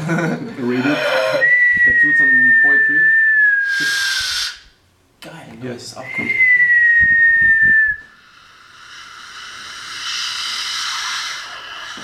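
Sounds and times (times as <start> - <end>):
person whistling: 1.4 - 4.6, 6.0 - 8.1
breathy hiss: 3.6 - 4.8, 8.1 - 12.0.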